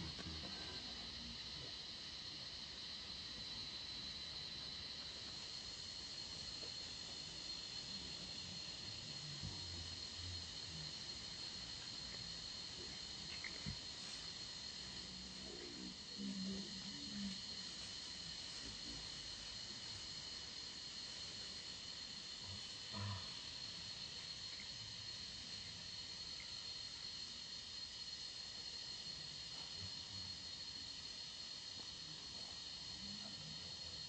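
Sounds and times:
high-pitched insect drone: 0.0s - 34.0s.

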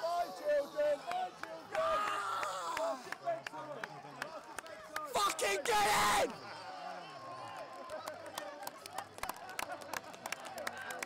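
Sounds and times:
people shouting and cheering: 0.0s - 3.1s, 4.8s - 9.2s
long drawn-out shout: 1.7s - 3.1s, 5.1s - 6.4s.

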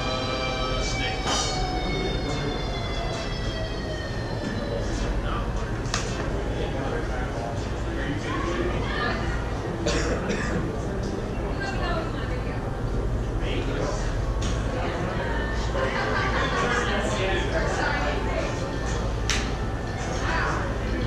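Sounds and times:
chatter of many voices: 0.0s - 21.0s
steady low hum: 0.0s - 21.0s.

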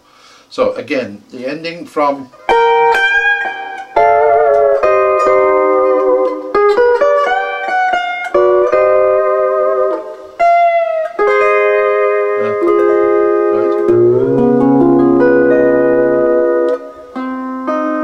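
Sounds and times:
steel guitar chords: 2.4s - 18.0s.

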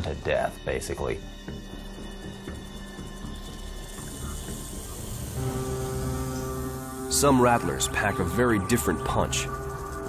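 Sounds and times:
documentary music: 0.0s - 10.0s
rattlesnake rattle buzzing: 0.6s - 10.0s.

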